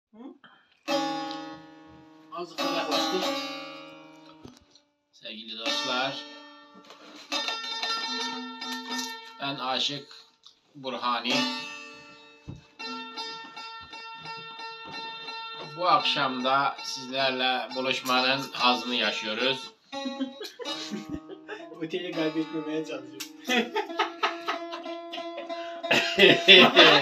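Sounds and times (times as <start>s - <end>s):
long-necked lute strummed: 0.9s - 4.6s, 5.5s - 9.9s, 11.1s - 27.0s.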